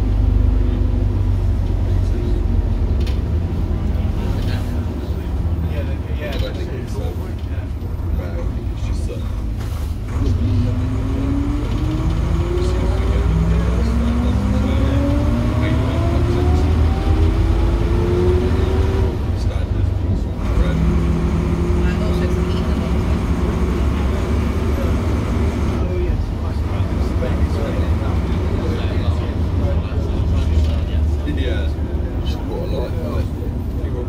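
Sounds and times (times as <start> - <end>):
bus engine rumbling: 0.0 - 34.0.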